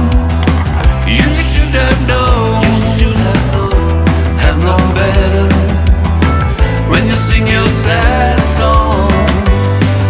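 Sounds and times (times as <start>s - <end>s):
drum beat: 0.0s - 6.6s
bass: 0.0s - 10.0s
electric guitars: 0.0s - 10.0s.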